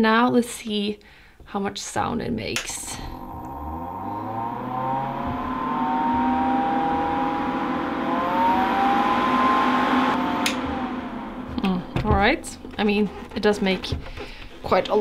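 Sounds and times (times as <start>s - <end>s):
suction fan whirring with whine: 2.9s - 14.6s
switch click: 10.4s - 10.6s.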